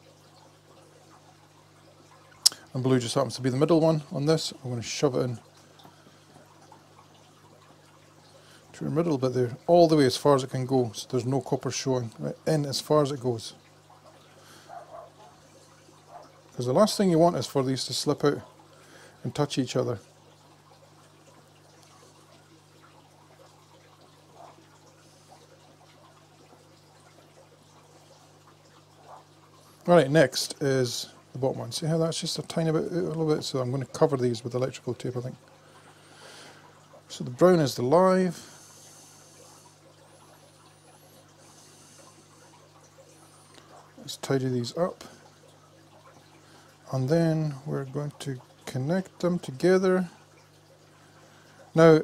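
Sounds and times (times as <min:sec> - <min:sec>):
faint trickle of water: 0:00.0 - 0:52.0
steady low hum: 0:00.0 - 0:52.0.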